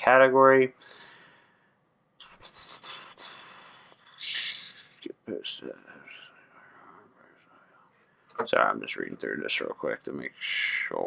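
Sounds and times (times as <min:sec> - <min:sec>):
soft breathy whisper: 0:02.2 - 0:11.0.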